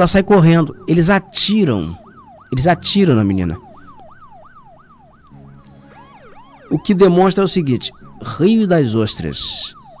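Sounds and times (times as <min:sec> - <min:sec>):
electronic siren yelping: 0:00.0 - 0:10.0.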